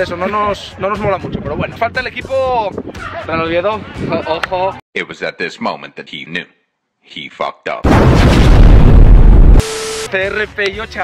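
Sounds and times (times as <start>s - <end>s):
explosion boom with rumble: 7.8s - 9.6s
short steady tone: 9.6s - 10.1s.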